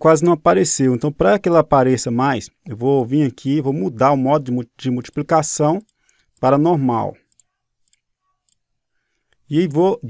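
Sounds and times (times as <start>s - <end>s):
faint computer mouse clicks: 7.2s - 8.7s.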